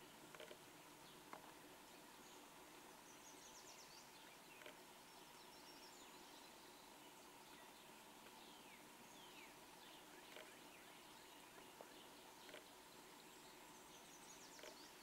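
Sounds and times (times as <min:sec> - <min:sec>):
distant birds chirping: 0:00.0 - 0:15.0
faint steady hum: 0:00.0 - 0:15.0.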